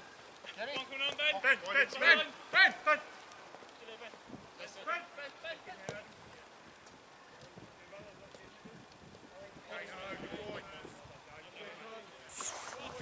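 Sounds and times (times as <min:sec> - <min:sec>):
footballers shouting: 0:00.5 - 0:03.2.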